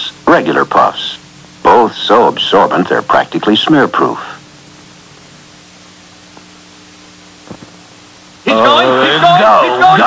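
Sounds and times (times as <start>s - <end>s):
faint low hum: 0.0s - 10.0s
old recording hiss: 0.0s - 10.0s.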